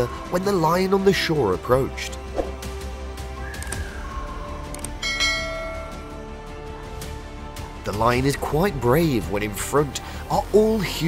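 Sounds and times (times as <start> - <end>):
background music: 0.0 - 11.0
bell chime ringing: 5.0 - 6.2.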